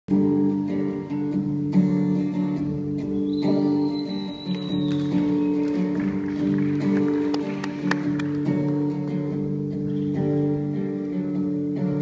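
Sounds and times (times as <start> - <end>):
acoustic and electric guitars live: 0.1 - 12.0
thin high whistle: 3.2 - 5.8.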